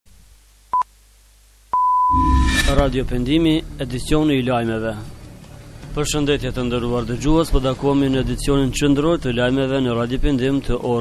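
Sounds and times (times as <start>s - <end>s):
radio time signal beeps: 1.8s - 2.8s.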